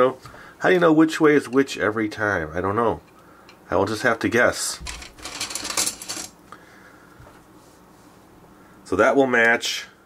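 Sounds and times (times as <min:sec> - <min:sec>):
plastic pieces clattering: 0:04.9 - 0:06.3.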